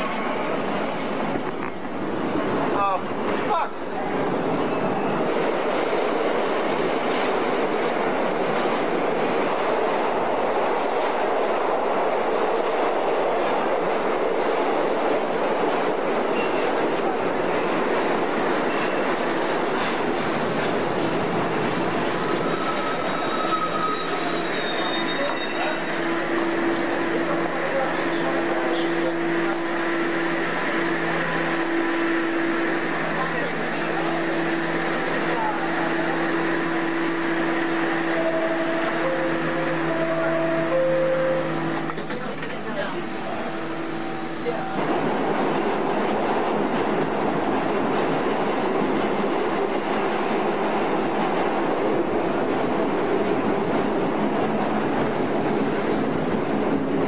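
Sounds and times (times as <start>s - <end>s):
subway train wheels rumbling: 0.0s - 57.0s
train low hum: 0.0s - 57.0s
high-pitched wheel squeals: 22.0s - 26.4s.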